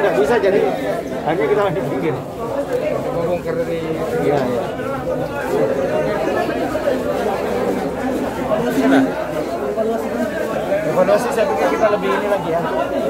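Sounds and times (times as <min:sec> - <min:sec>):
overlapping chatter: 0:00.0 - 0:13.0.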